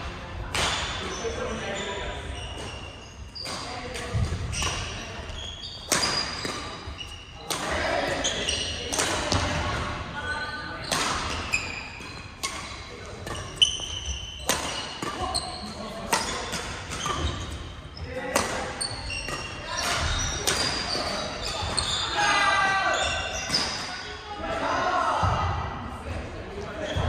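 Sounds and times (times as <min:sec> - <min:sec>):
players' voices: 0:00.0 - 0:27.0.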